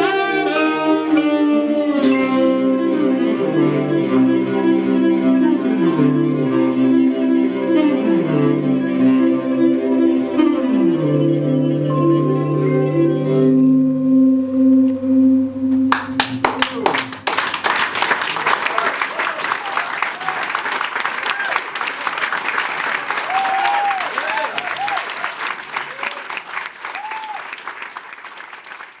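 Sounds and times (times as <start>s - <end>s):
audience applauding: 15.9s - 29.0s.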